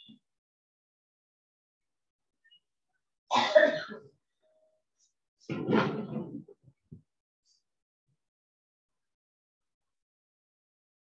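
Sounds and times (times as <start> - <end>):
person coughing: 3.3 - 4.2.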